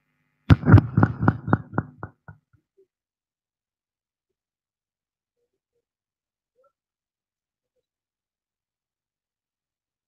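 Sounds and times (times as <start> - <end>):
echoing knocks over loudspeaker: 0.5 - 2.4.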